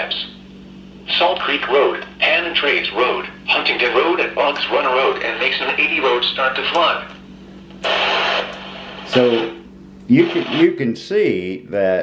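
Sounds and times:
broadcast voice: 0.0 - 0.4, 1.0 - 7.2, 7.8 - 12.0
radio static hiss: 1.0 - 10.9.

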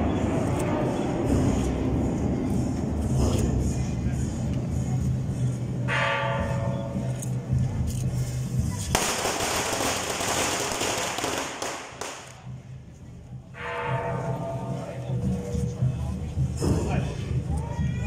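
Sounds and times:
firecrackers crackling: 8.8 - 12.6.

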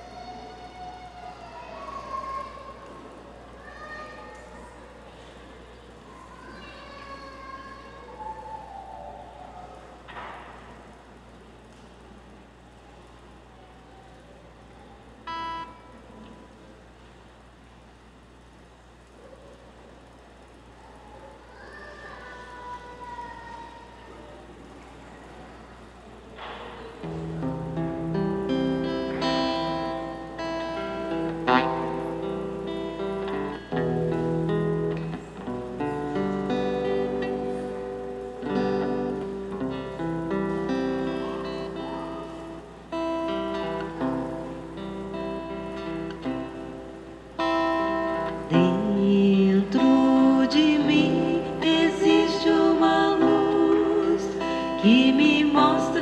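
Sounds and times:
church room sound: 0.0 - 56.0
plucked guitar music: 27.0 - 56.0.

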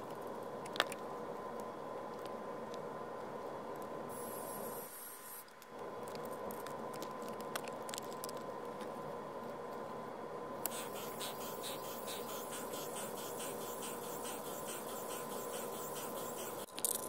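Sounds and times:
steady background hiss: 0.0 - 16.7
faint steady whine: 0.0 - 17.0.

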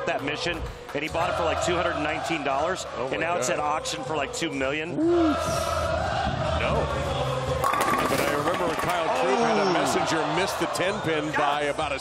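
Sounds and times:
crowd voices: 5.0 - 12.0
bowling ball rolling: 7.6 - 9.1.

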